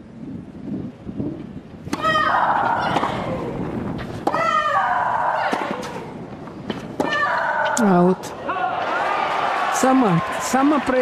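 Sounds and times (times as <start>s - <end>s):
racket striking tennis ball: 1.8s - 7.8s.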